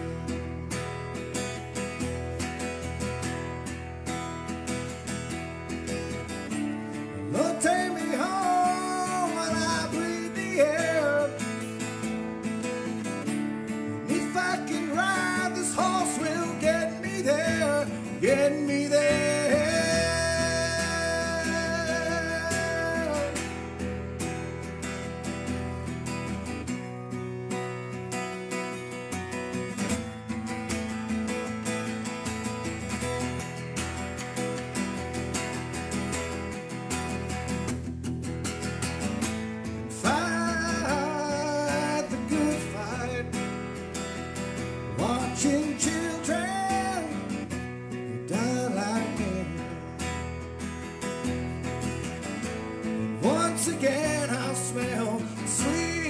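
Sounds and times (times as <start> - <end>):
acoustic guitar strumming: 0.0 - 56.0
man singing into a microphone: 7.1 - 12.0, 13.9 - 23.8, 39.9 - 43.8, 44.9 - 50.2, 53.1 - 56.0.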